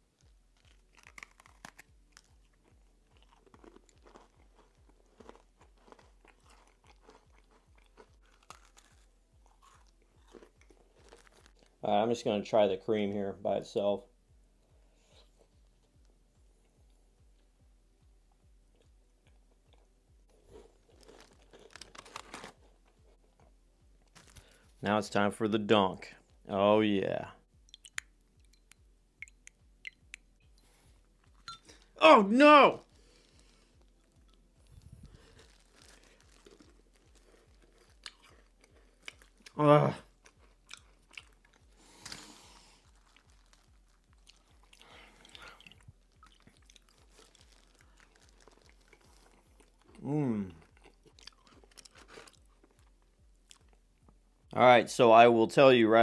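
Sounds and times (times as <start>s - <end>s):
cookie chewing and crunching: 0.0s - 11.8s, 18.4s - 25.2s, 27.6s - 54.2s
person humming: 50.0s - 50.6s.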